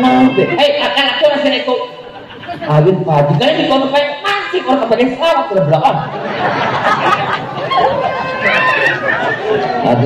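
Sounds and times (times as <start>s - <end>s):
man talking: 0.0s - 6.1s, 9.8s - 10.0s
chatter: 0.0s - 10.0s.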